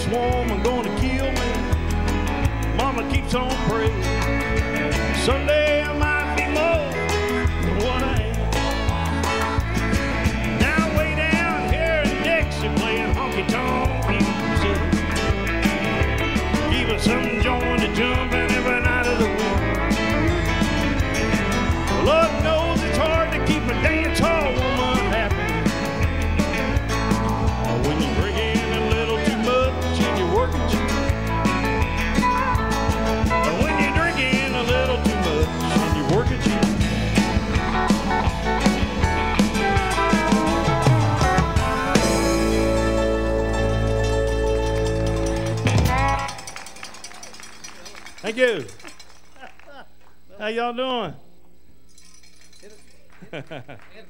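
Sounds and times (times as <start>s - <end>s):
electric guitar lead: 0.0s - 48.0s
bass and drums: 0.0s - 49.4s.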